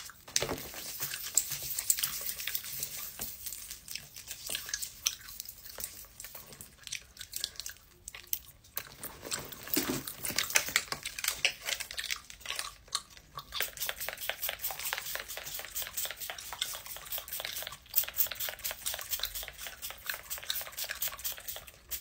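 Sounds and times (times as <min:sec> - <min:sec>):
chewing clicks and crunches: 0:00.0 - 0:22.0.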